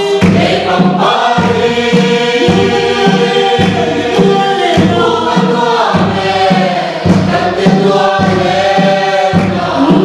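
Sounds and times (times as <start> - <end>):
barrel drum beat: 0.0 - 10.0
congregation singing a hymn: 0.0 - 10.0
woman singing into microphone: 2.4 - 5.5.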